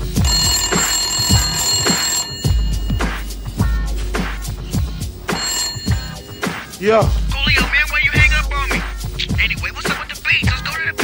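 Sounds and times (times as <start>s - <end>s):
telephone ringing: 0.0s - 9.7s
hip-hop beat with bass thumps: 2.4s - 11.0s.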